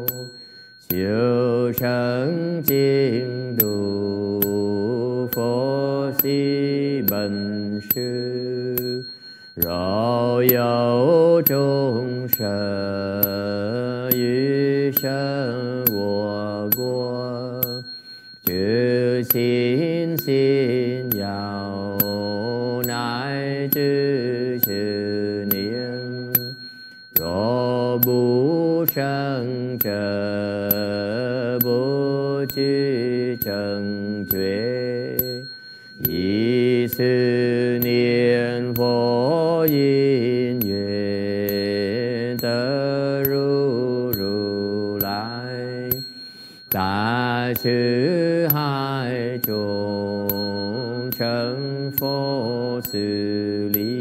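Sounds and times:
person chanting: 0.0 - 26.6, 27.2 - 46.1, 46.7 - 54.0
thin high tone: 0.0 - 54.0.

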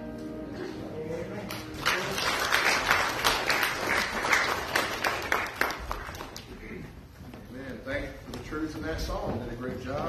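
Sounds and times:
congregation clapping: 1.4 - 6.7.

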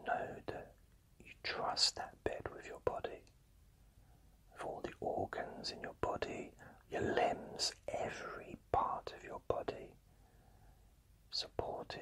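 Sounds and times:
man whispering: 0.0 - 3.3, 4.5 - 10.0, 11.3 - 12.0.

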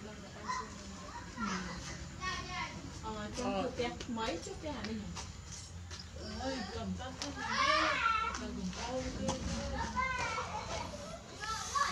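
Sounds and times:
children talking and calling out: 0.0 - 3.6, 6.1 - 11.9.

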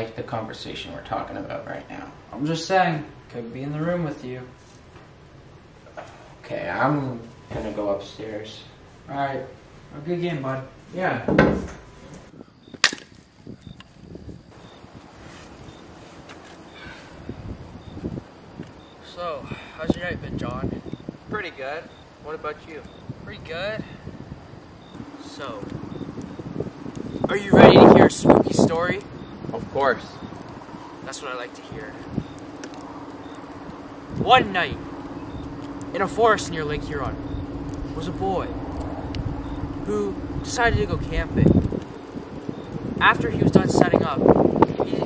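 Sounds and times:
steady low hum: 0.0 - 45.0
firewood knocking and rustling: 11.2 - 16.5, 30.3 - 36.0, 41.4 - 43.0
short thump: 11.3 - 11.9
sharp wooden crack: 12.8 - 13.3
campfire crackling and popping: 12.8 - 23.4, 24.2 - 45.0.

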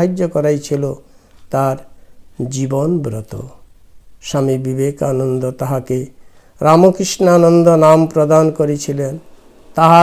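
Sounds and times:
man reciting in chant: 0.0 - 10.0.

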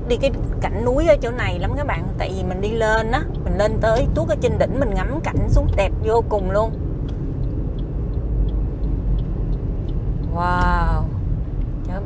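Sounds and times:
car cabin road and engine rumble: 0.0 - 12.0
faint light ticks: 6.6 - 12.0.

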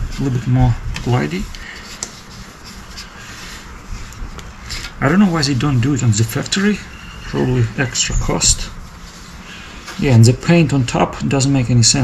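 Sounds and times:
cloth rubbing on sanded surface: 0.0 - 11.6.

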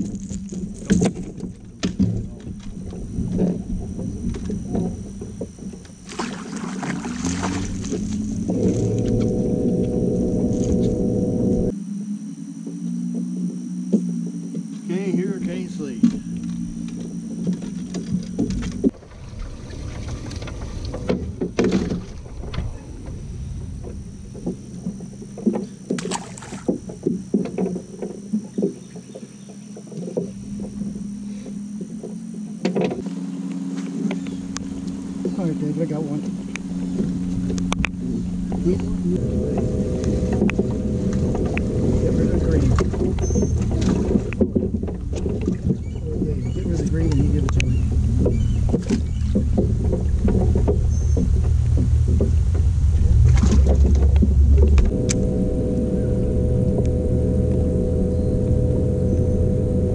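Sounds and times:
boat motor humming: 0.0 - 59.9
low rumble: 0.0 - 59.9.

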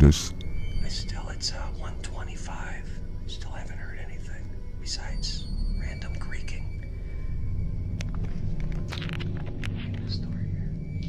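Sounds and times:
man whispering: 0.0 - 6.8, 9.7 - 10.8
steady low rumble: 6.1 - 11.0.

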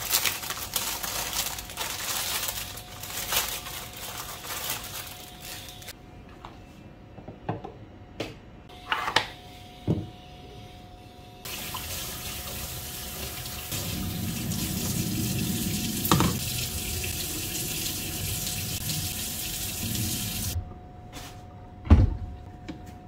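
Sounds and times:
tap water running into sink: 11.5 - 20.6.

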